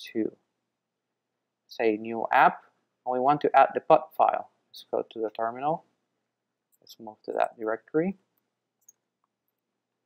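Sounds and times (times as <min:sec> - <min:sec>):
person speaking: 0:01.6 - 0:06.0, 0:06.7 - 0:09.2.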